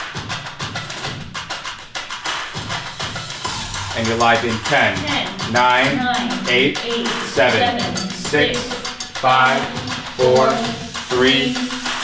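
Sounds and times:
music with quick percussion beat: 0.0 - 12.0.

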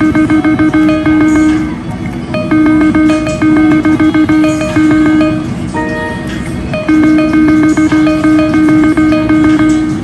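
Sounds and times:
rapid electronic ticks: 0.0 - 1.7, 2.3 - 5.8, 6.7 - 10.0
steady electronic tone: 0.0 - 10.0.

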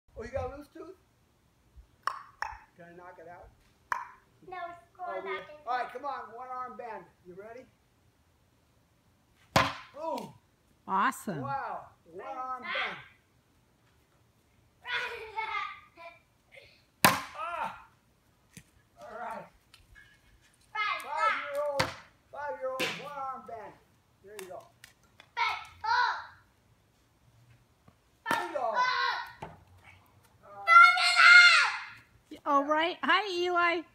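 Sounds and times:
plastic bat hitting a ball: 9.5 - 10.3, 17.0 - 17.4, 21.6 - 22.1, 22.8 - 23.2, 28.3 - 28.6
person exclaiming: 17.4 - 17.9
child crying out: 30.5 - 32.0.

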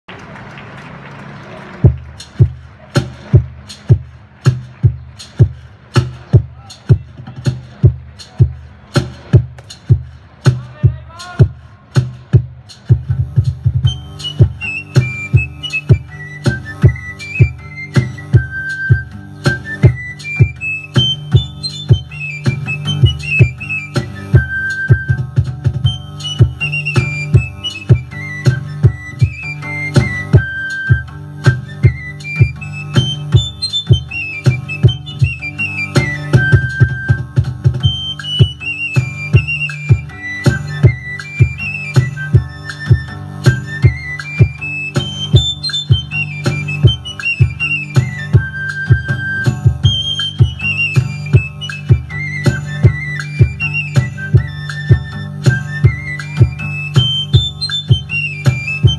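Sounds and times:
high pipe playing lively melody: 1.7 - 58.9
string drum droning pulse: 1.7 - 58.9.

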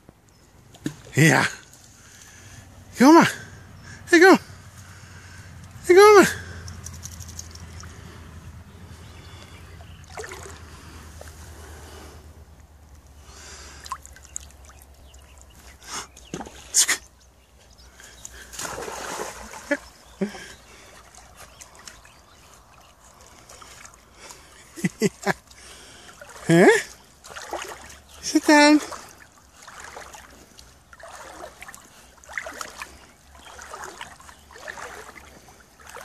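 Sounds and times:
pond water splashing: 0.1 - 36.0.

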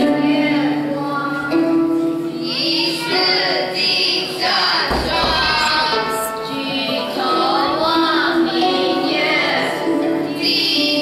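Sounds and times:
children singing: 0.0 - 11.0
musical accompaniment: 0.0 - 11.0.

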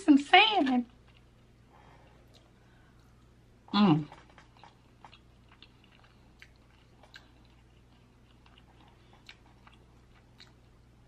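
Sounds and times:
steady low hum: 0.0 - 11.0
chewing and wet mouth clicks: 0.8 - 3.3, 4.1 - 10.8.

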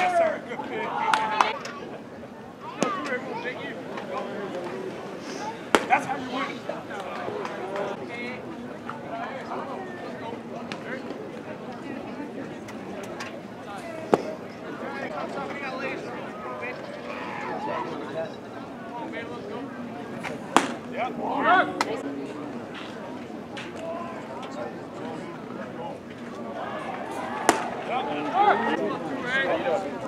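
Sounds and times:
faint background voices: 0.0 - 30.0
baseball smacking into mitt: 20.6 - 20.8, 27.4 - 27.8.

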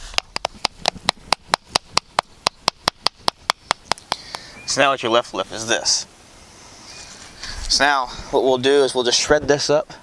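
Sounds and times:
rock pounding on rock: 0.0 - 4.2.

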